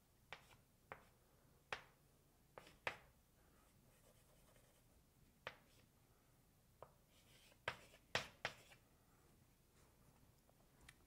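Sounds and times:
chalk tapping on blackboard: 0.3 - 1.1, 1.7 - 2.0, 2.6 - 3.1, 5.4 - 5.9, 6.8 - 8.8
chalk scratching: 2.6 - 5.9, 7.1 - 8.8.

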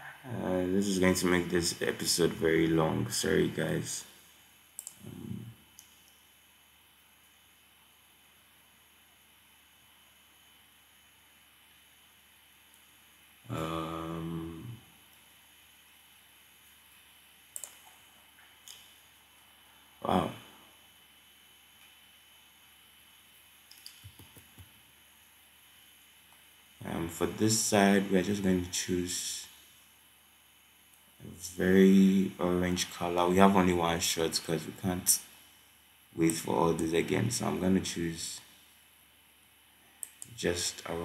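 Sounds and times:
low hum of voice: 0.0 - 4.0, 5.0 - 5.6, 13.5 - 14.8
computer mouse clicks: 4.8 - 6.2, 17.5 - 18.0, 23.7 - 24.8, 40.0 - 40.4.

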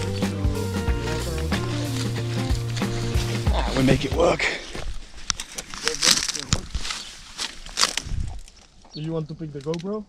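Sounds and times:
footsteps through rustling leaves: 0.0 - 8.8
stems snapping: 1.0 - 3.8, 4.8 - 10.0.

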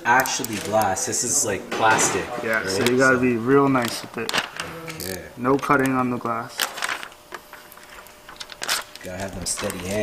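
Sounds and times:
faint rustling of plastic film: 3.7 - 10.0.

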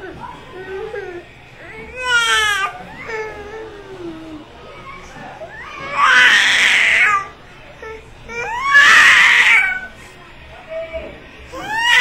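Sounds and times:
baby crying: 0.7 - 4.2, 5.4 - 10.0, 11.5 - 12.0.

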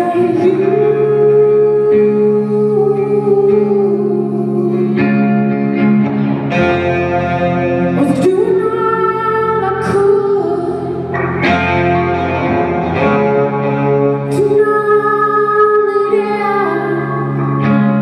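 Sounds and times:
woman singing: 0.0 - 5.6, 7.9 - 11.2, 14.3 - 18.0
distorted electric guitars: 0.0 - 18.0.

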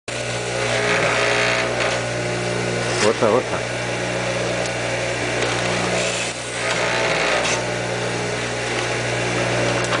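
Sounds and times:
electric lathe grinding: 0.1 - 10.0.

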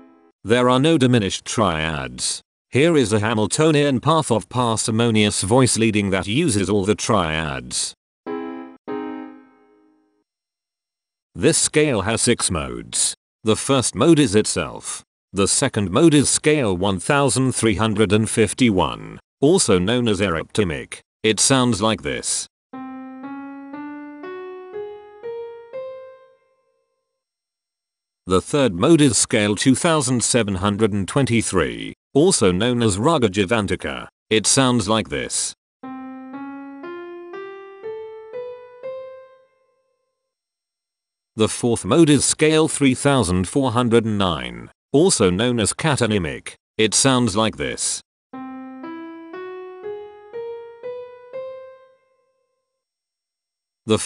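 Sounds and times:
piano playing ascending scale: 0.0 - 0.3, 8.3 - 10.2, 22.7 - 26.9, 35.8 - 39.9, 48.3 - 52.5.

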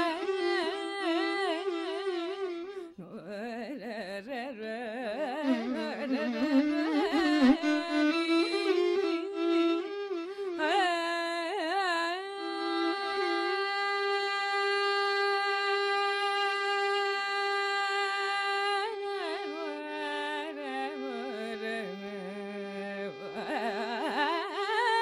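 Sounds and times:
violin accompaniment: 0.0 - 2.9, 5.4 - 11.7
woman singing ornamented phrases: 0.0 - 9.4, 10.6 - 25.0.

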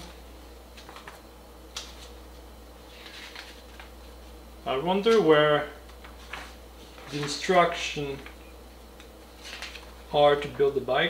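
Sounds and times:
low steady hum: 0.0 - 11.0
paper pages flipping: 0.7 - 4.4, 5.1 - 8.4, 9.0 - 10.0.

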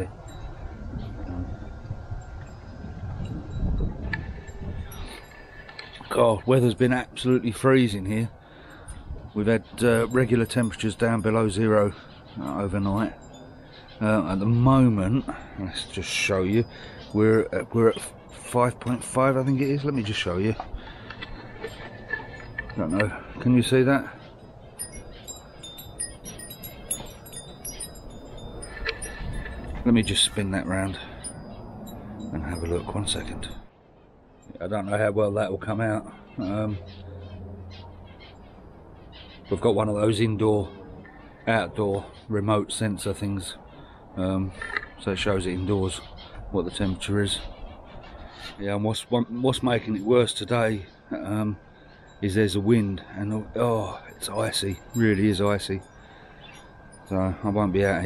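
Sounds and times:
wind chime ringing: 0.0 - 9.0, 9.6 - 33.7, 49.0 - 58.0
wind buffeting microphone: 0.0 - 11.6, 15.9 - 33.7.

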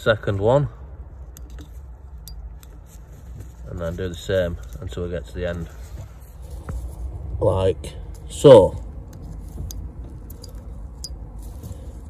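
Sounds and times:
faint handling noise: 1.2 - 7.2.

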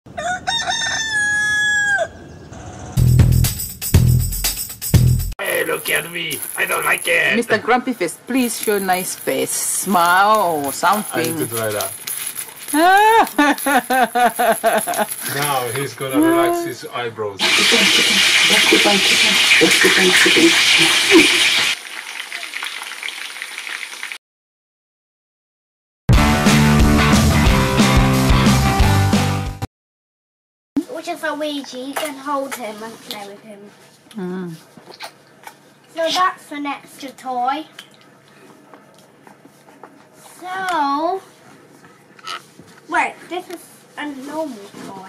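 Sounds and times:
rooster crowing: 0.1 - 2.9
chicken frying with crackling pops: 17.4 - 24.2.

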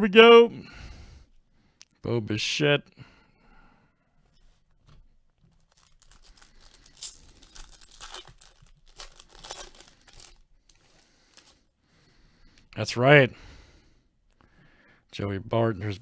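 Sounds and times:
wrapper crinkling and tearing: 5.4 - 11.6.

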